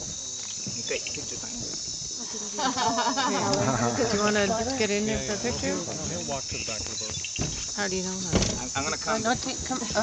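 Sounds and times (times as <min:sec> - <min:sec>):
night insects chirping: 0:00.0 - 0:10.0
people talking: 0:02.5 - 0:07.2, 0:07.8 - 0:10.0.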